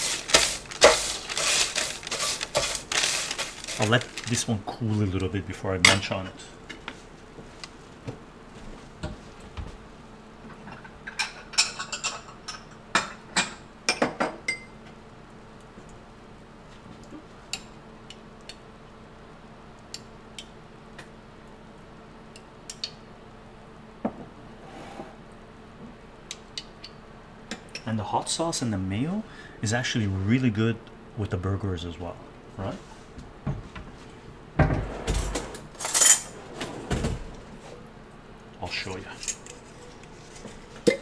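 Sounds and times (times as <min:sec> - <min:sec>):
faint steady hum: 0:00.0 - 0:41.0
dishes and cutlery clinking: 0:10.6 - 0:14.7.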